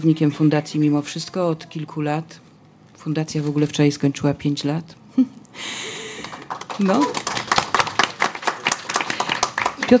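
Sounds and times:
people clapping: 0:06.0 - 0:10.0.

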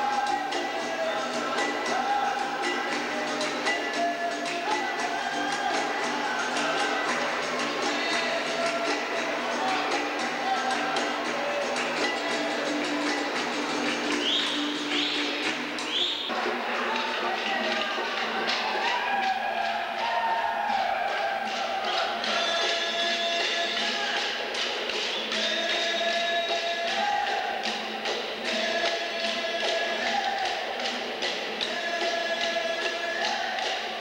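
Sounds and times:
group singing: 0:00.0 - 0:34.0.

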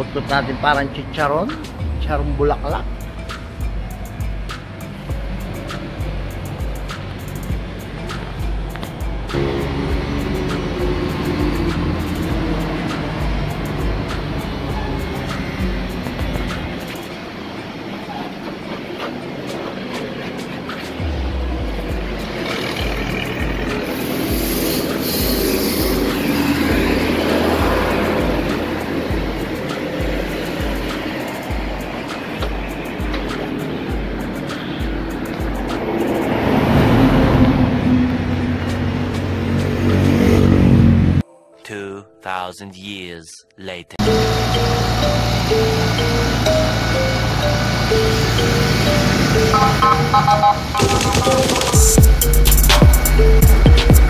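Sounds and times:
background music with bass beat: 0:00.0 - 0:17.4, 0:19.4 - 0:40.7, 0:44.0 - 0:54.0.

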